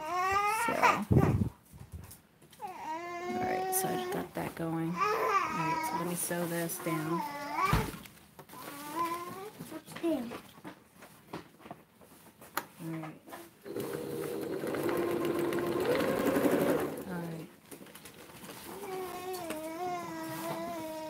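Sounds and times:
sewing machine stitching: 13.6 - 17.4.

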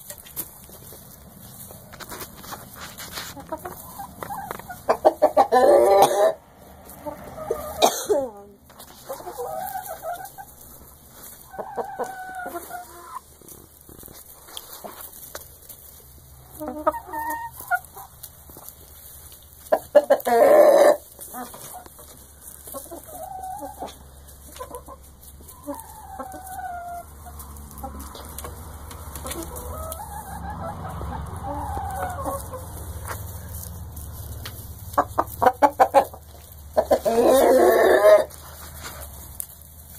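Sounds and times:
chickens clucking and calling: 0.0 - 39.9.

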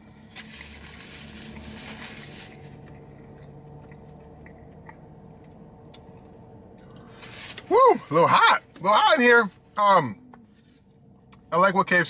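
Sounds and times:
steady low hum: 0.0 - 12.0
person chewing food: 2.8 - 7.1.

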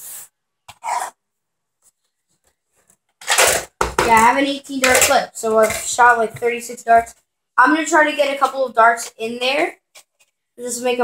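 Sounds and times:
plastic toy clicks and rubbing: 3.2 - 3.8.

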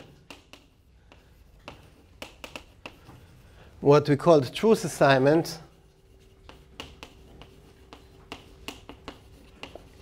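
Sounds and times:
chalk tapping on blackboard: 0.0 - 3.6, 5.4 - 10.0.

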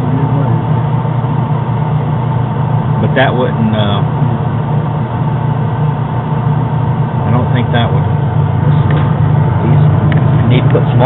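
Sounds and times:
clothes dryer humming: 0.0 - 11.0.

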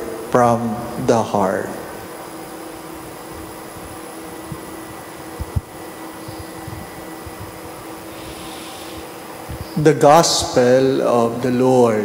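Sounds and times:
whirring ventilation hum: 0.0 - 12.0.

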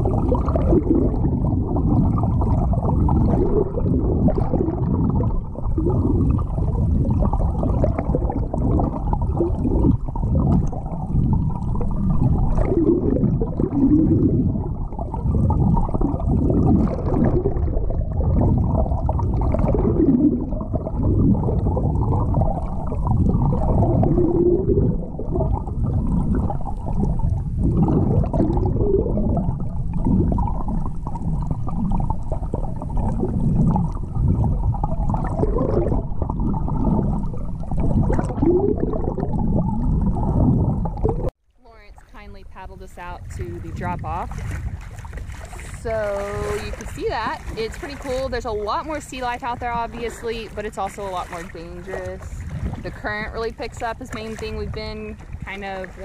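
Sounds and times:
muffled underwater water movement: 0.0 - 56.0.

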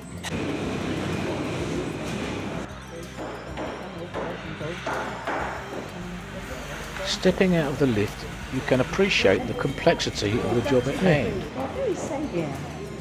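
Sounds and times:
faint background music: 0.0 - 13.0
murmur of voices: 1.2 - 13.0.

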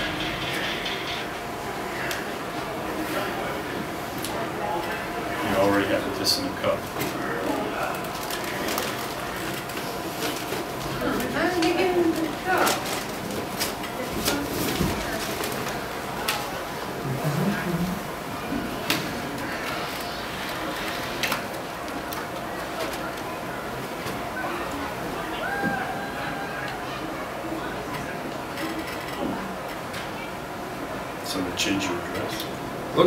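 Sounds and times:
indistinct talking: 0.0 - 33.0.

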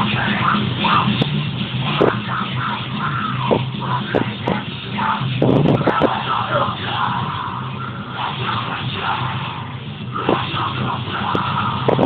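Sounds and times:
distorted guitars: 0.0 - 12.0
heavy metal music: 0.0 - 12.0.

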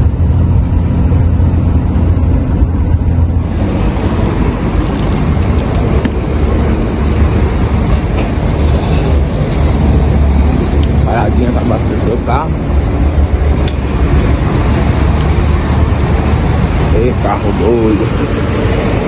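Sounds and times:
diesel engine drone in cab: 0.0 - 19.0
road noise: 0.0 - 19.0
rushing outdoor noise: 0.0 - 19.0.

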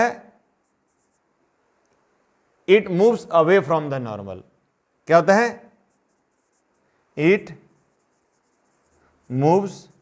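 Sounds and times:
marker pen writing on whiteboard: 0.6 - 1.3, 5.8 - 10.0
man speaking: 9.3 - 10.0.

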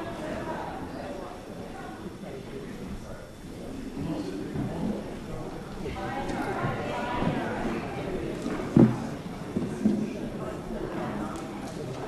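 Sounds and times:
murmur of many people talking: 0.0 - 12.0.

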